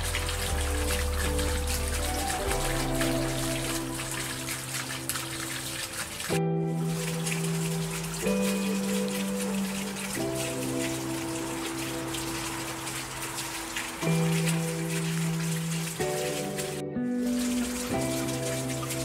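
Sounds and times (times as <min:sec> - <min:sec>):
rain pattering: 0:00.0 - 0:19.0
slow soft chord music: 0:00.0 - 0:19.0.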